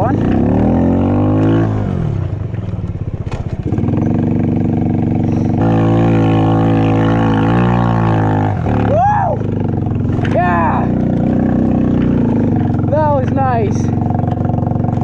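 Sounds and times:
quad engine revving: 0:00.0 - 0:15.0.

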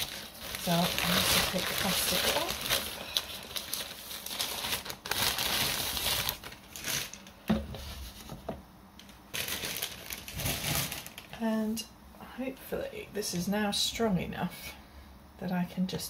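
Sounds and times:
plastic bag crinkling: 0:00.0 - 0:08.3, 0:09.0 - 0:11.4.

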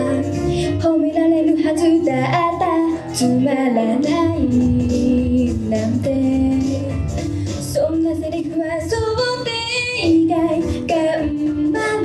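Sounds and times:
backing music track: 0:00.0 - 0:12.0
girl singing pop song: 0:00.0 - 0:12.0.

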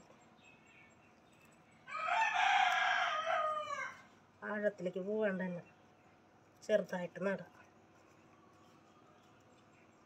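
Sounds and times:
rooster crowing: 0:01.9 - 0:04.1.

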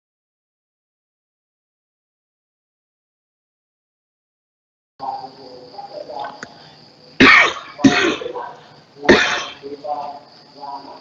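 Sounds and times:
man coughing: 0:07.2 - 0:08.5, 0:09.1 - 0:09.6.

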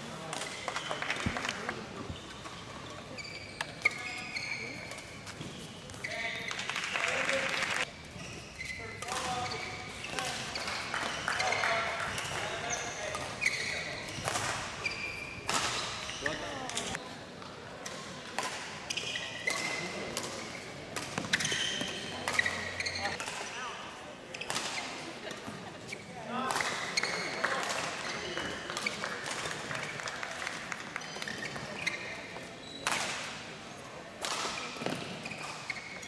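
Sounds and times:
shoe squeaks: 0:02.0 - 0:06.8, 0:07.8 - 0:17.0, 0:18.9 - 0:23.7, 0:26.8 - 0:29.0, 0:31.0 - 0:33.0, 0:34.6 - 0:36.0
racket striking shuttlecock: 0:15.4 - 0:16.1.

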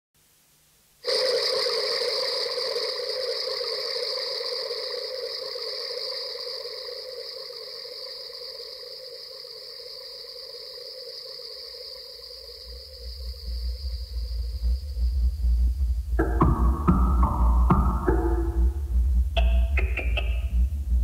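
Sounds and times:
hissing electronic noise bands: 0:01.0 - 0:21.0.

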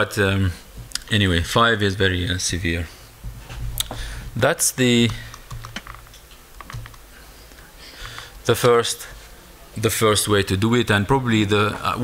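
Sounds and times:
laptop keyboard key presses: 0:06.6 - 0:07.0.

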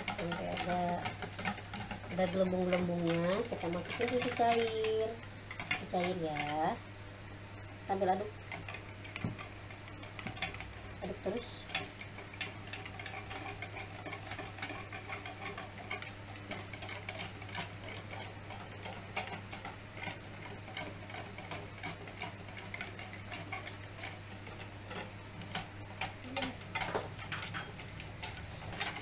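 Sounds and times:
whisk clicking against bowl: 0:00.0 - 0:06.7, 0:08.5 - 0:29.0.

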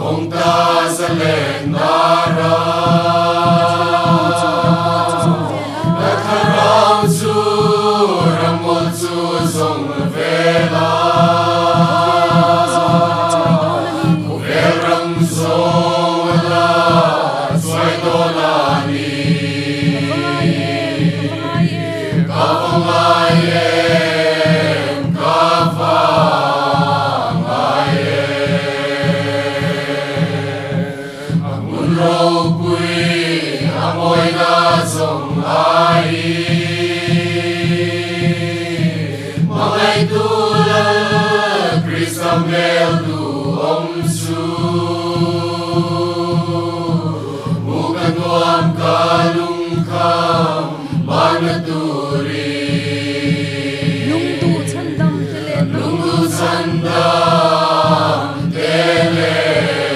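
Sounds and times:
choir singing a slow hymn: 0:00.0 - 0:59.9
drum beating steadily: 0:00.0 - 0:59.9.

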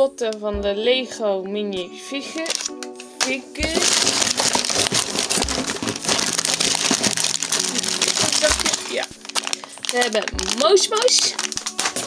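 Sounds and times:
foil packaging crinkling: 0:02.4 - 0:12.0
dull low thumps: 0:03.6 - 0:06.3.

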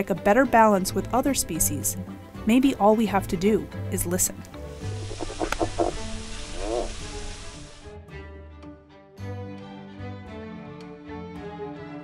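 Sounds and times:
background music: 0:00.0 - 0:12.0
field recording hiss: 0:03.4 - 0:07.9
frog calling: 0:04.7 - 0:07.8.

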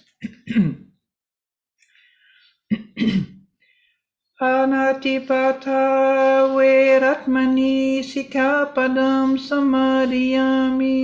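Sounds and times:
person clearing throat: 0:00.0 - 0:01.0, 0:02.7 - 0:03.4.

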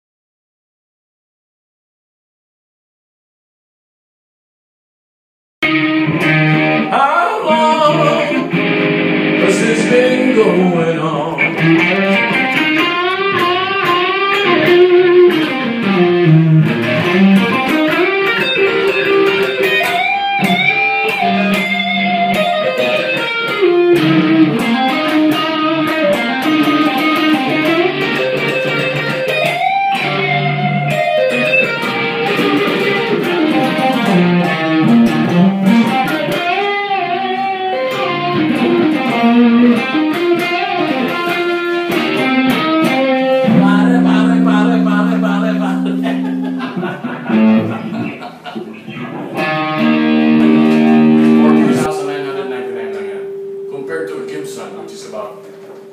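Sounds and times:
electric guitar solo: 0:05.6 - 0:55.9
low guitar chord ringing: 0:42.0 - 0:48.2, 0:49.3 - 0:55.9.

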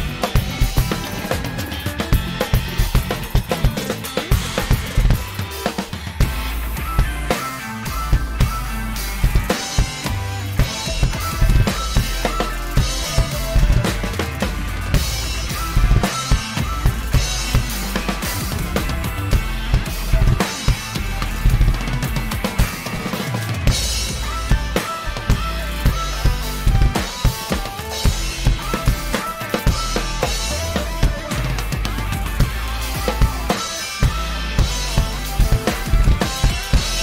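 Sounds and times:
deep bass line: 0:00.0 - 0:37.0
drum kit played hard: 0:00.0 - 0:37.0
progressive rock with guitar: 0:00.0 - 0:37.0.

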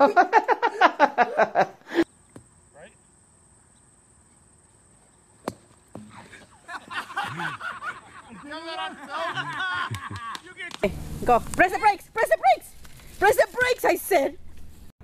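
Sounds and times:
people laughing and calling out: 0:06.1 - 0:10.8.

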